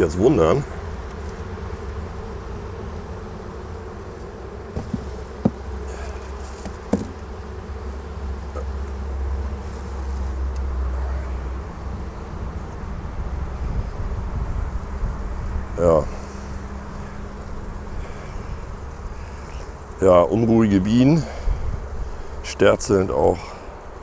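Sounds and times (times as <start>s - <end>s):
bees humming with a roar: 0.0s - 24.0s
wooden knocks: 4.8s - 5.6s, 6.6s - 7.2s.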